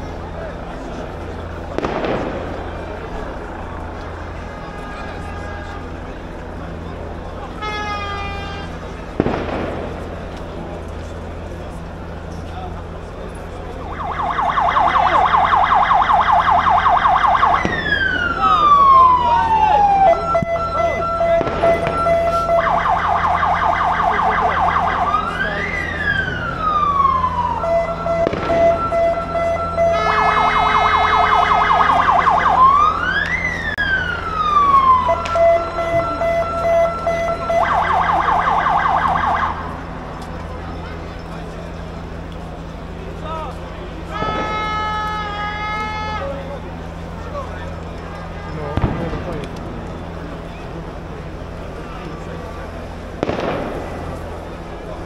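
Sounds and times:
ambulance siren: 0.0s - 43.0s, 43.9s - 55.0s.

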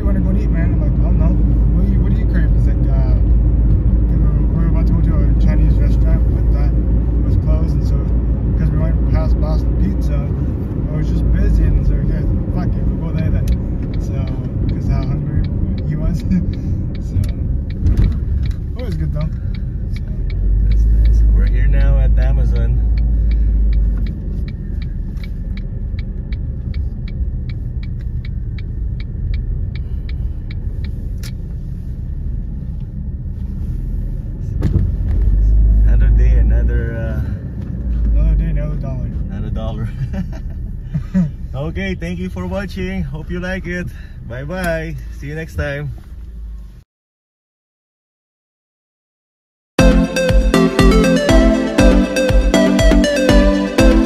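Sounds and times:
car engine and road noise: 0.0s - 46.9s, 49.8s - 54.0s
rapid even ticking: 11.3s - 31.4s.

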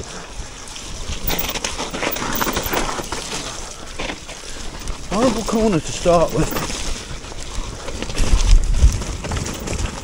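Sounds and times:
tyres running through mud and water: 0.0s - 10.0s
bike rattling and knocking: 1.2s - 10.0s.

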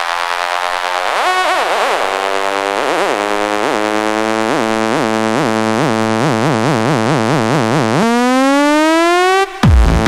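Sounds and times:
held synth note with pitch blips: 0.0s - 9.7s
rising synth riser: 0.0s - 10.0s.

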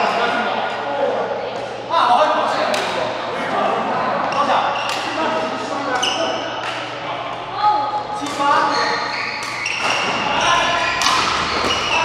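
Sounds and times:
voices talking in echoing hall: 0.0s - 12.0s
racket hitting shuttlecock: 11.0s - 11.9s.

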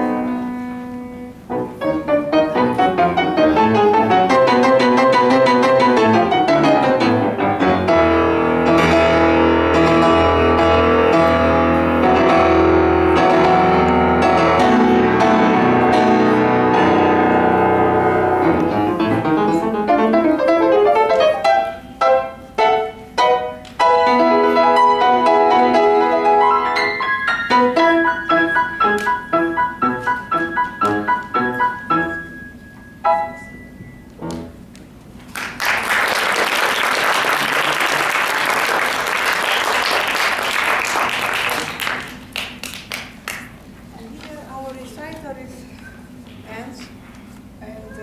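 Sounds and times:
grand piano playing: 0.0s - 35.1s.

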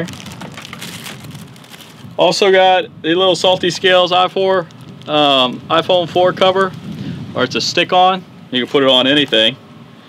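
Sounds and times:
plastic packaging crinkling: 0.0s - 2.2s, 3.8s - 7.0s.

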